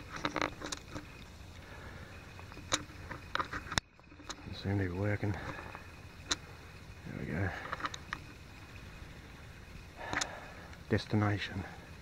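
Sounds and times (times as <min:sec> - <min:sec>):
camera handling clicks and rustles: 0:00.0 - 0:01.3, 0:02.4 - 0:04.4.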